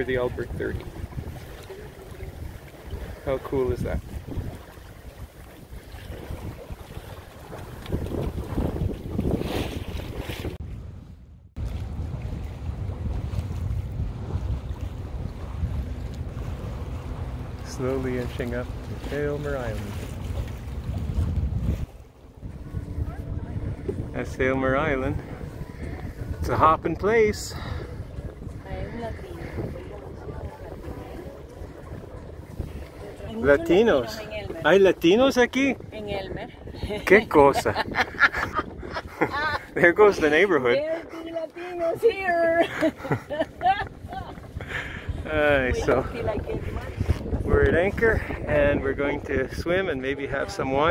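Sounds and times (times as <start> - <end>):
water washing past hull: 0.0 - 50.9
wind buffeting microphone: 0.0 - 50.9.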